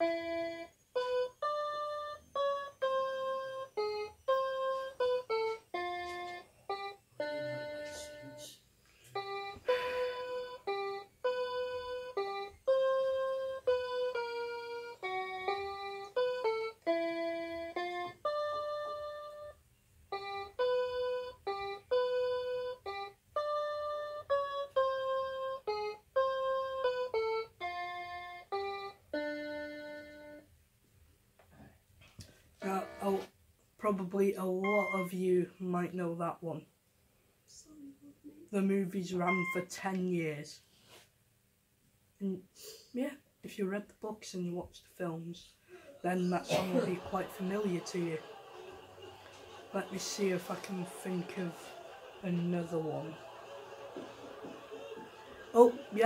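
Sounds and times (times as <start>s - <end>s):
electronic keyboard melody: 0.0s - 30.5s, 32.6s - 33.2s, 34.6s - 35.2s, 39.2s - 39.7s.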